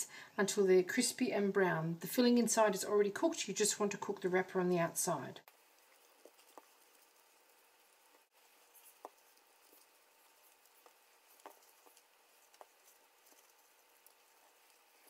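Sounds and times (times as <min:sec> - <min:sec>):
soft taps and rustles: 0:05.5 - 0:15.0.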